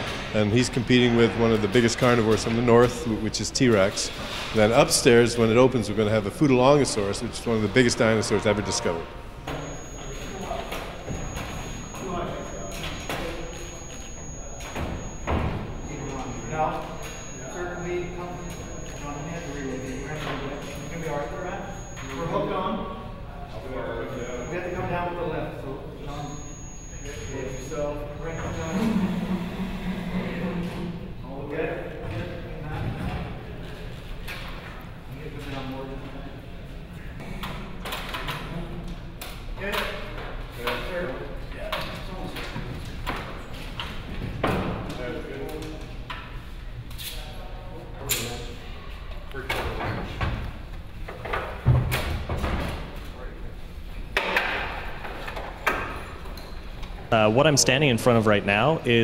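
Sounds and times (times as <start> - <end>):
voices in echoing hall: 0.0 - 59.0.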